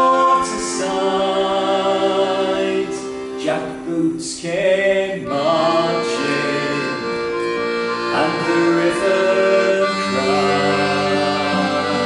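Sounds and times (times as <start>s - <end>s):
acoustic guitar: 0.0s - 12.0s
man singing: 0.0s - 12.0s
piano accordion: 0.0s - 12.0s.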